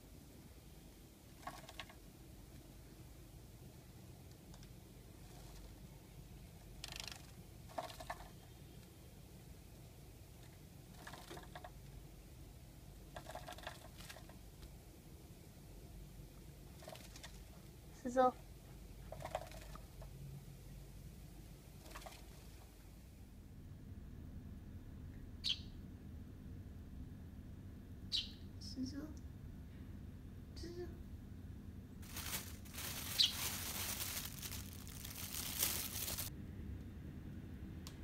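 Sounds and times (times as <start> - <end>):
steady rustling hiss: 0.0 - 23.7, 31.7 - 36.4
sparrow chirps: 25.4 - 25.8, 28.1 - 28.5, 33.1 - 33.5.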